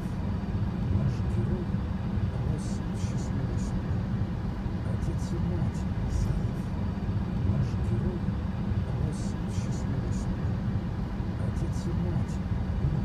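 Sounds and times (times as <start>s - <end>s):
car rumble from inside cabin: 0.0s - 13.0s.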